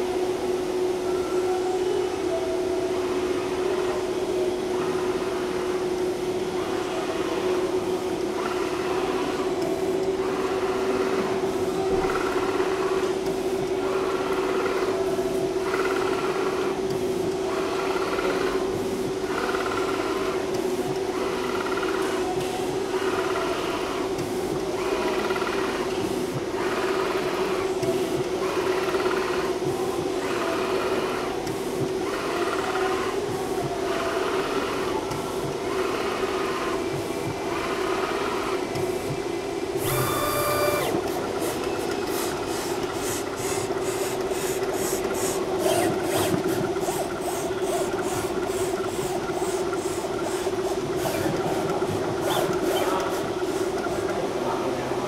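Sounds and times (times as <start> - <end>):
steady motor hum: 0.0 - 55.0
whirr with a tone: 39.8 - 41.2.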